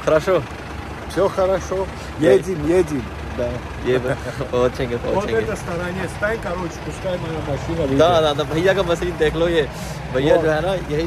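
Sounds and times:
minivan engine idling: 0.0 - 11.0
voices talking: 0.0 - 11.0.

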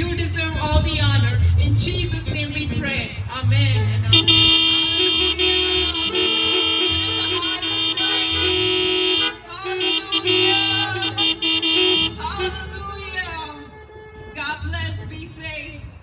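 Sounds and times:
woman's voice: 9.4 - 11.4, 12.0 - 13.7.

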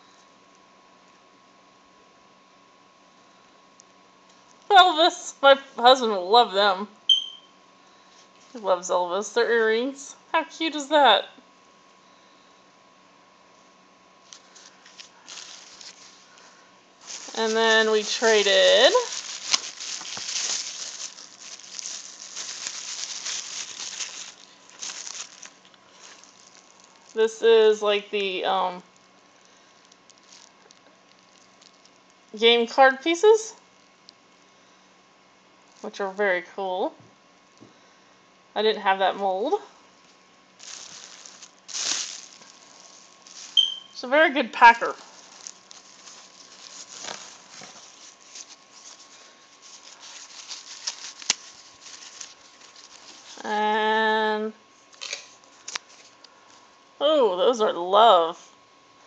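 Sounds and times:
bubble wrap crinkling: 14.2 - 32.4, 40.0 - 53.8, 54.8 - 56.3.

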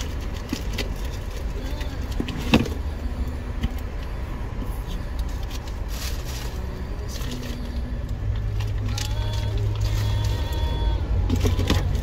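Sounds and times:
car idling: 0.0 - 12.0.

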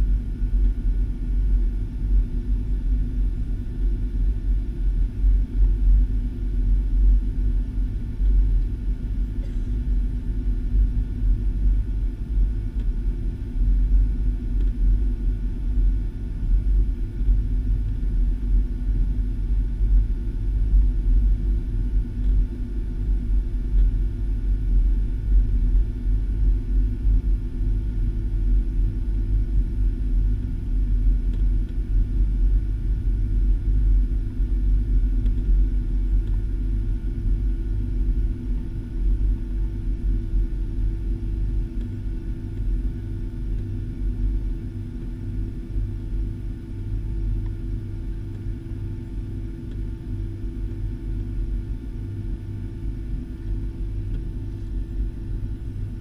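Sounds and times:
jet cabin rumble while taxiing: 0.0 - 56.0.

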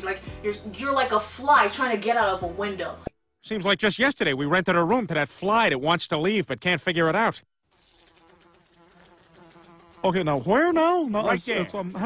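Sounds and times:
housefly buzzing: 7.7 - 12.0.

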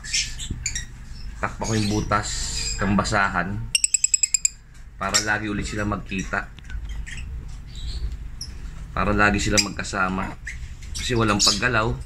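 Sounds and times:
lovebirds squeaking: 0.0 - 2.9, 3.8 - 8.8, 9.4 - 11.8.

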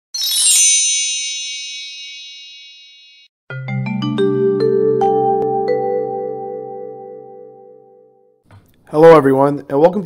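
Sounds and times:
bright shimmering chime: 0.2 - 3.3.

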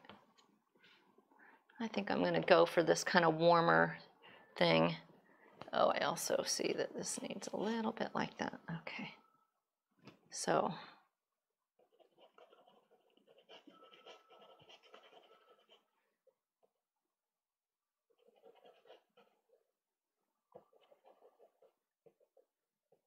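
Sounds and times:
pastel stick scratching paper: 11.8 - 16.0.

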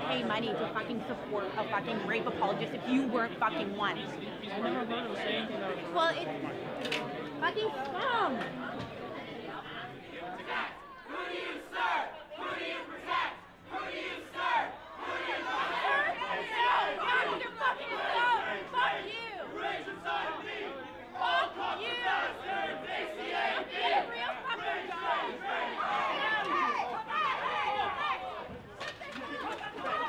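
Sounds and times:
crowd of protesters shouting: 10.1 - 30.0.

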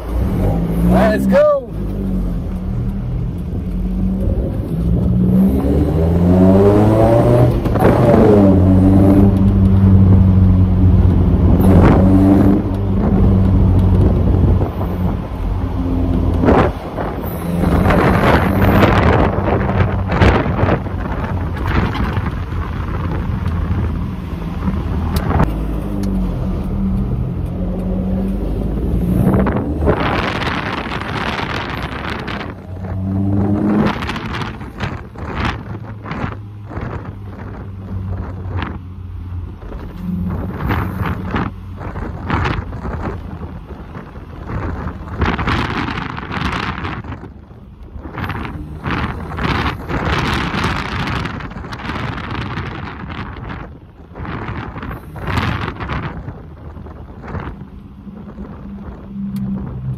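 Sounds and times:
truck engine revving: 0.0 - 59.9.

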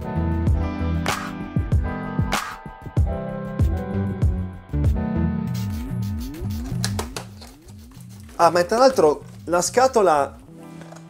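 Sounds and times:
background music with sliding notes: 0.0 - 11.0.

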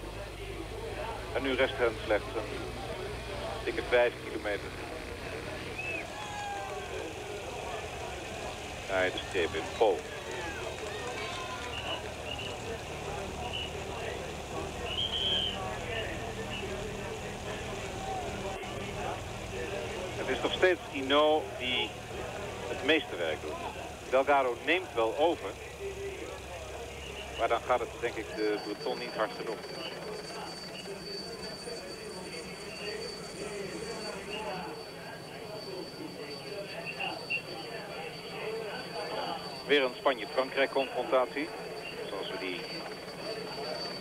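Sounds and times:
engine drone: 0.0 - 31.1
faint voices: 0.0 - 44.0
high-pitched whine: 0.0 - 44.0.

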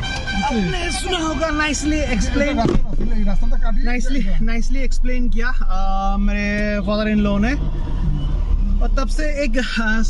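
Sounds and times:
car engine rumble: 0.0 - 10.0
road noise inside car: 0.0 - 10.0.

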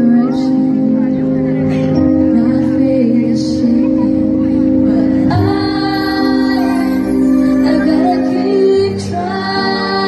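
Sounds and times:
keyboard: 0.0 - 10.0
violin: 0.0 - 10.0
woman singing into microphone: 0.0 - 10.0.

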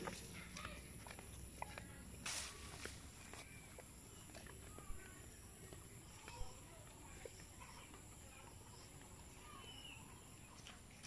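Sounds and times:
flip-flop footsteps on wet dirt: 0.0 - 8.1.

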